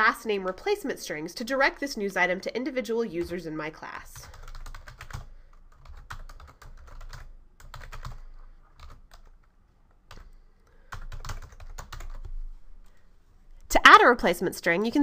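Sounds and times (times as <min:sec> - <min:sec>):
keyboard typing clicks: 0:10.9 - 0:12.3.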